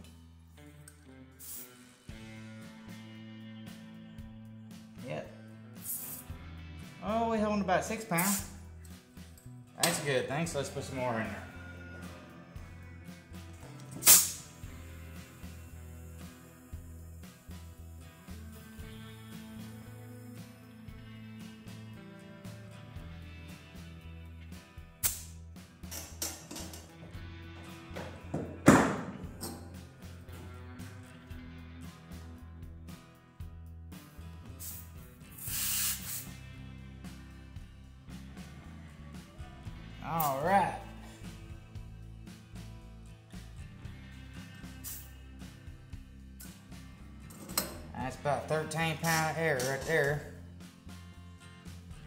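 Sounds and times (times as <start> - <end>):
background music: 0.0 - 52.0
compressed air hissing: 1.4 - 2.2, 5.8 - 6.4, 8.1 - 8.6, 13.8 - 20.7, 25.0 - 25.4, 34.5 - 36.4, 44.4 - 45.5.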